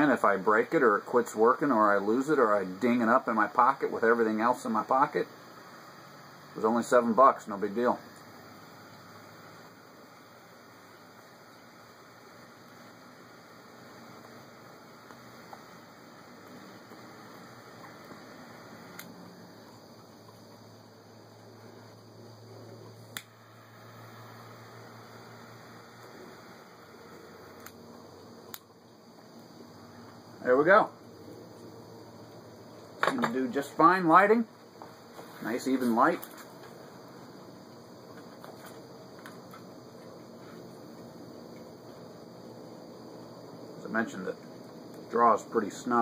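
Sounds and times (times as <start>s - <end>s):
torch lighter hiss: 0.0s - 46.0s
sharp clicks: 18.9s - 19.2s, 23.1s - 23.4s, 27.6s - 27.8s, 28.5s - 28.7s.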